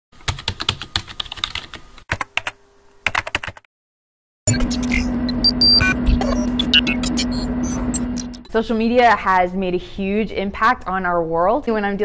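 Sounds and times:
keyboard typing: 0.2 - 3.7.

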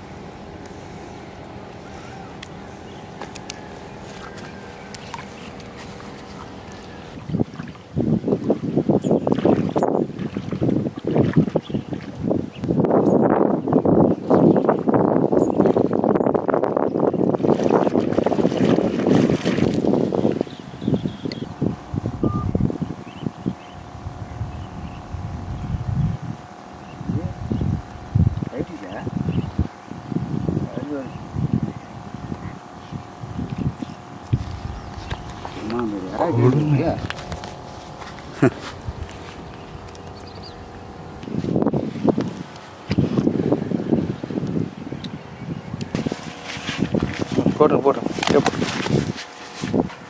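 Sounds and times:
faint steady hum: 0.0 - 50.0
wind buffeting microphone: 0.0 - 50.0
water splashing around wading legs: 1.4 - 7.9, 9.2 - 12.2, 17.4 - 20.5.

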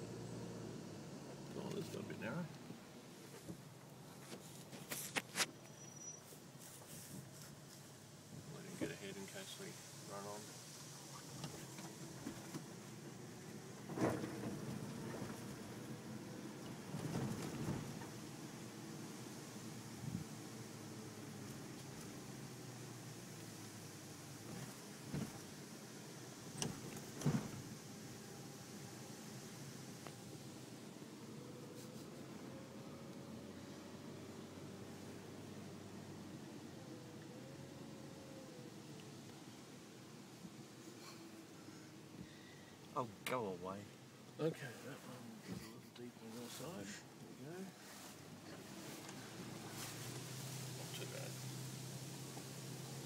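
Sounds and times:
engine and tyre noise in cabin: 0.0 - 53.0
vehicle knocks and rattles: 13.8 - 15.8, 16.6 - 18.3, 24.4 - 25.6, 26.5 - 27.8.

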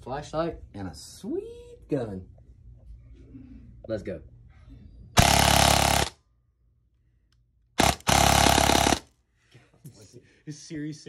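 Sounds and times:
airsoft gun firing full-auto: 5.2 - 6.2, 7.8 - 9.1.

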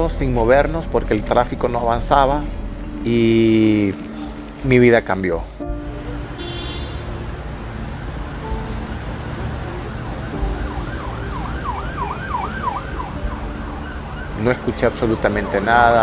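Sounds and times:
road traffic rumbling: 0.0 - 16.0
emergency vehicle siren yelp: 9.3 - 16.0.

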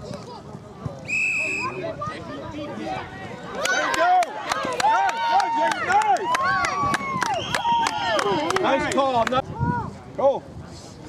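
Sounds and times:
referee's whistle blast: 1.1 - 1.8.

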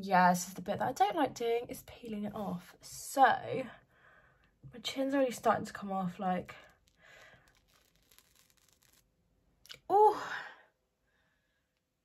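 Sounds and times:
face mask peeling off skin: 6.4 - 9.2.

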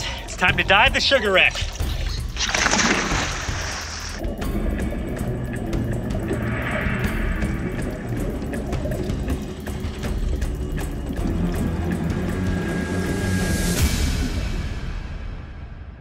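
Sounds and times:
background music: 0.0 - 16.0
low underwater rumble: 1.7 - 15.1
regulator bubbles rushing out: 4.2 - 15.0.

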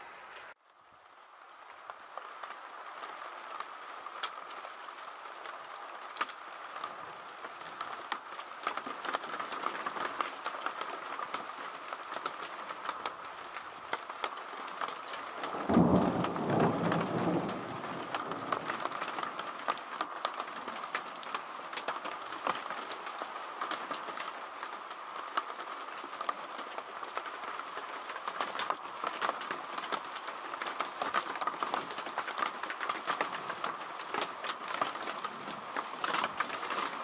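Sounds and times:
steady rain: 0.0 - 37.0
thunder rolling: 15.4 - 19.5.

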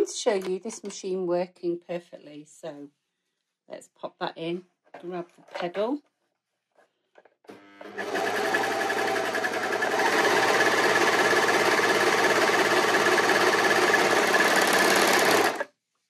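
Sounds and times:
overlocker stitching fabric: 7.8 - 15.7.

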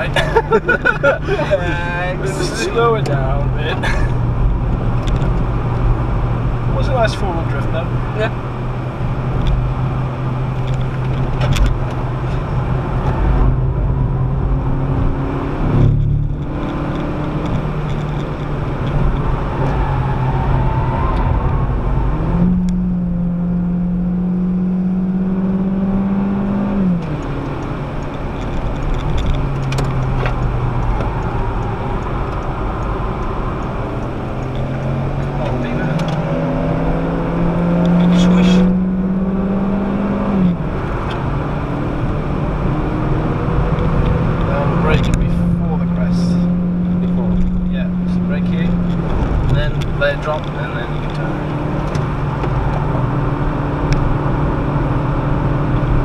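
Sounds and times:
car engine revving under load: 0.0 - 56.0
road and tyre noise: 0.0 - 56.0.

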